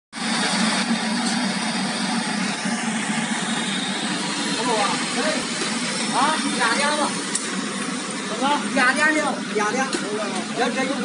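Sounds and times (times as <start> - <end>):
even rushing noise: 0.2 - 8.6.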